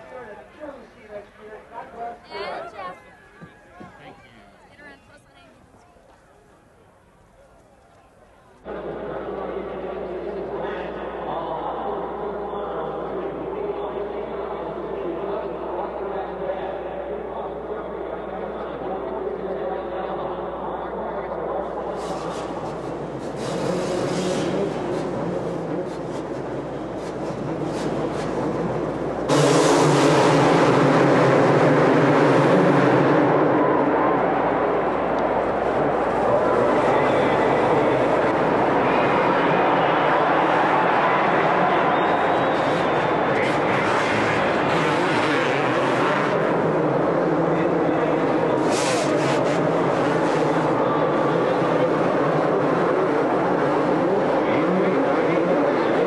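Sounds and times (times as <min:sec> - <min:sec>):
motorcycle engines revving: 0:08.6 - 0:56.0.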